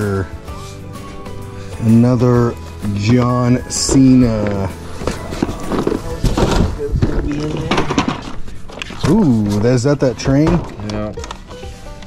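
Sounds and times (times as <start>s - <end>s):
cardboard packaging rustling and knocking: 3.1s - 11.0s.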